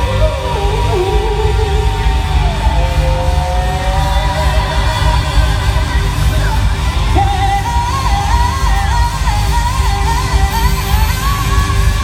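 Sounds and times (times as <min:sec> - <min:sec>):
heavy pulsing bass: 0:00.0 - 0:12.0
sung or synth held notes: 0:00.0 - 0:12.0.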